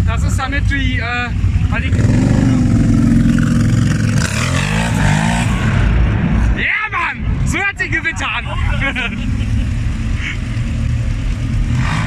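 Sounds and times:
quad engine revving: 0:01.6 - 0:06.0, 0:08.9 - 0:12.0.

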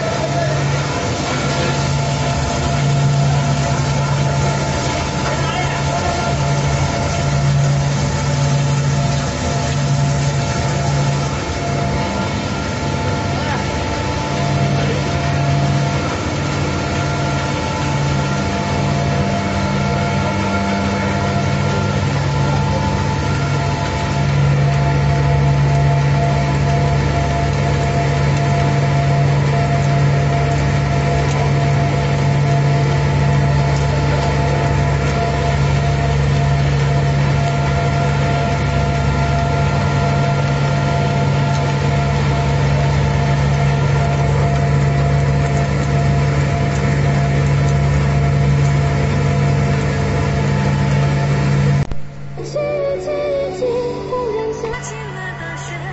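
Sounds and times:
machine motor hum: 0:00.0 - 0:55.9
whining tones: 0:00.0 - 0:55.9.

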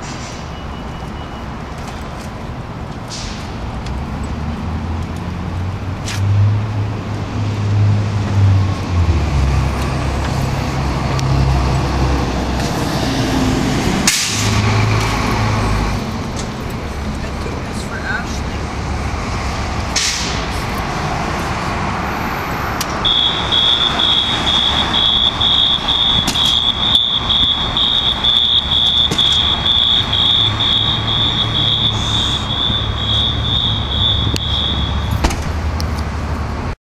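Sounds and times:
vehicle engines rumbling: 0:00.0 - 0:36.8
rapid high-pitched electronic beeping: 0:23.1 - 0:35.1.

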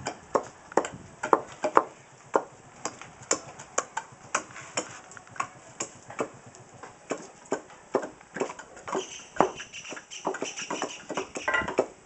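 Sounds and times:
blades chopping nuts on wood: 0:00.0 - 0:12.0.

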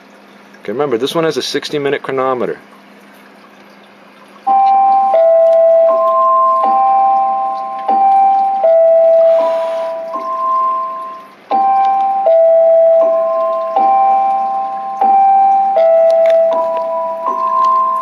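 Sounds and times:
phone alarm chiming melody: 0:04.4 - 0:18.0.

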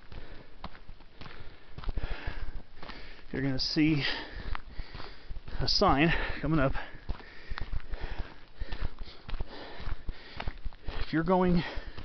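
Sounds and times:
footsteps on dirt road: 0:00.0 - 0:12.0
person breathing heavily: 0:00.0 - 0:12.0.

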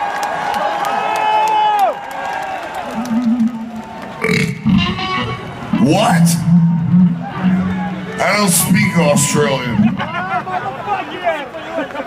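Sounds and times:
man making vocal noises over pa: 0:04.2 - 0:05.0, 0:05.7 - 0:06.9, 0:08.2 - 0:10.4.

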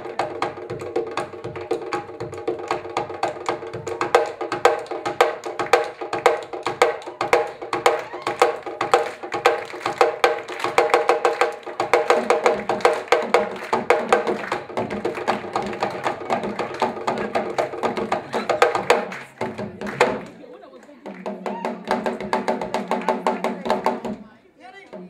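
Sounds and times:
drum ensemble fast rhythm: 0:00.0 - 0:25.0.

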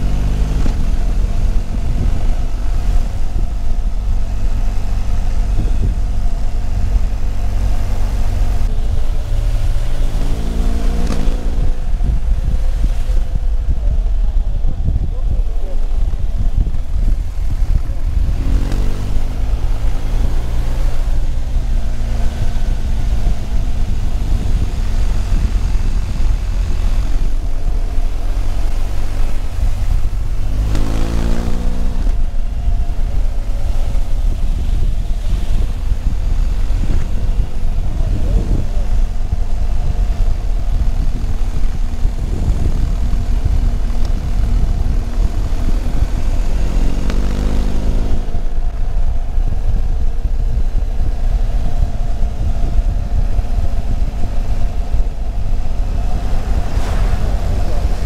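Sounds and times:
motorcycle engine running: 0:00.0 - 0:58.0
wind buffeting microphone: 0:00.0 - 0:58.0.

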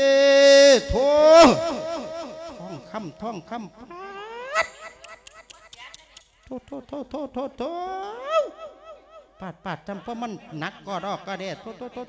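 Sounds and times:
man wailing through microphone: 0:00.0 - 0:03.0.

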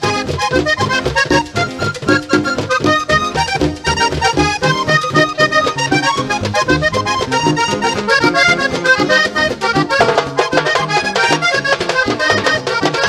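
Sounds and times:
band bass and rhythm: 0:00.0 - 0:13.0
button accordion fast run: 0:00.0 - 0:13.0.

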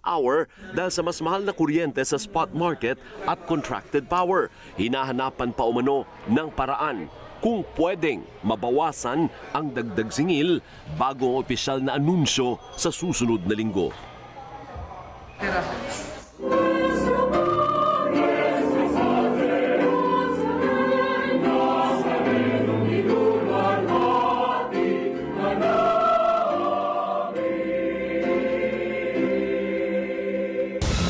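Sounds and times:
choir singing slow sustained notes: 0:16.4 - 0:31.0.

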